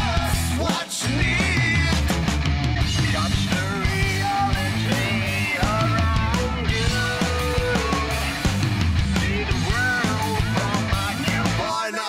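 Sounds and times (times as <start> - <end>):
heavy rock song: 0.0 - 12.0.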